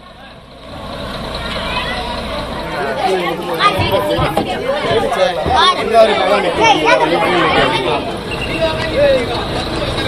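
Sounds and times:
bus diesel engine running: 0.0 - 10.0
people talking: 0.0 - 10.0.

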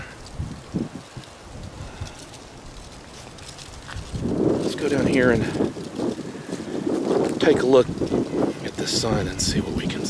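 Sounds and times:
soft rustles: 0.0 - 10.0
wind noise on microphone: 0.0 - 10.0
man speaking: 8.7 - 10.0.

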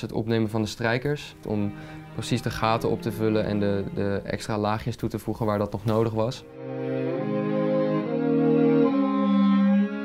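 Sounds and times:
string trio bowing chords: 0.8 - 5.1, 6.4 - 10.0.

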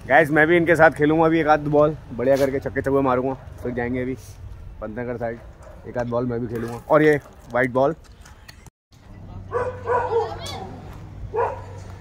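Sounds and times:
dog barking: 5.4 - 5.9, 9.5 - 10.7, 11.3 - 11.9
children shouting: 9.9 - 10.9.

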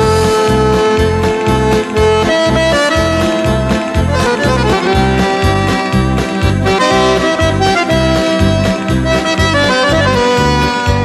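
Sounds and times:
accordion melody: 0.0 - 11.0
pulsing bass beat: 0.0 - 11.0.

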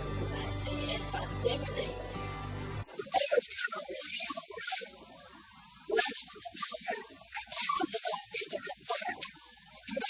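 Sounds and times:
muffled voice on tape: 0.0 - 2.1, 2.8 - 10.0.

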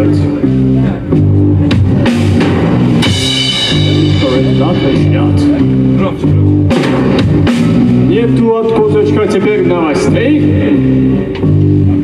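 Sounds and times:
rock band playing live: 0.0 - 12.0.

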